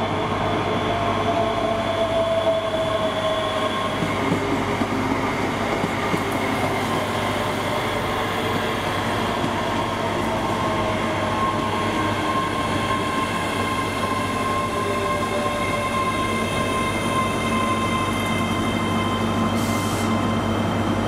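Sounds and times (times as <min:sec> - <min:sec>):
electric train whine: 0:00.0 - 0:21.0.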